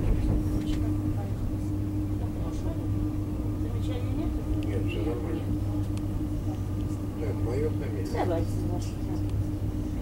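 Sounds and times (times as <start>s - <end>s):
train rumble and hum: 0.0s - 10.0s
people talking: 0.1s - 10.0s.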